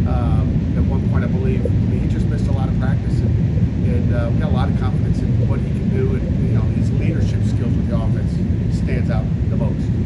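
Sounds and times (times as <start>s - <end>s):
man speaking: 0.0s - 10.0s
steady low rumble: 0.0s - 10.0s.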